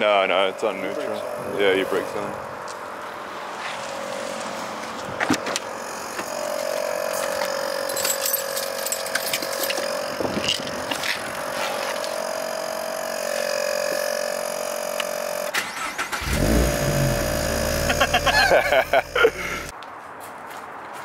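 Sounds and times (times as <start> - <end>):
low mechanical rumble: 3.9 - 19.7
high-pitched whine with hiss: 6.1 - 19.7.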